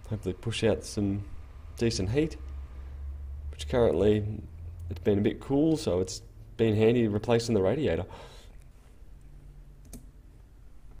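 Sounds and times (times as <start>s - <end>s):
computer fans humming: 0.0s - 11.0s.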